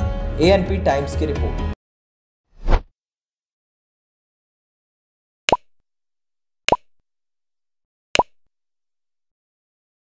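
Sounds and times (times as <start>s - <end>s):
pop sound effects: 5.5s - 5.7s, 6.7s - 6.9s, 8.2s - 8.4s.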